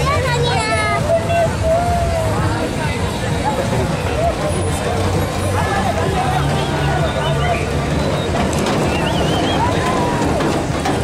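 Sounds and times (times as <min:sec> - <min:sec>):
crowd voices chattering: 0:00.0 - 0:11.0.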